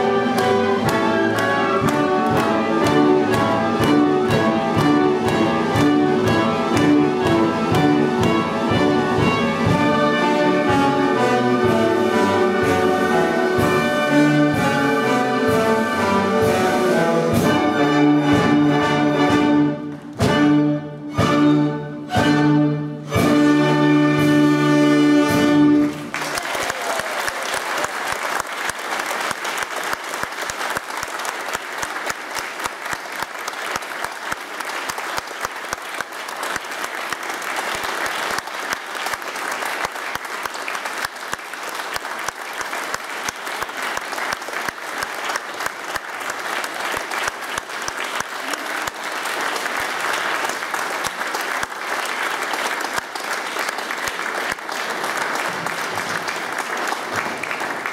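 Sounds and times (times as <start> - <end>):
audience applauding: 0.0 - 16.1, 24.7 - 57.9.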